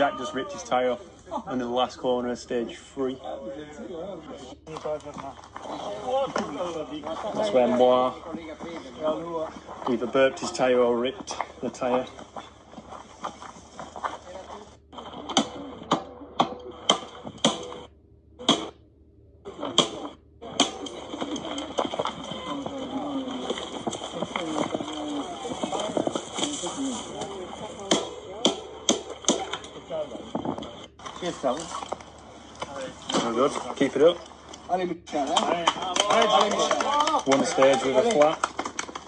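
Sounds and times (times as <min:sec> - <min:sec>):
voices chattering: 0:00.0 - 0:17.9, 0:19.5 - 0:39.0.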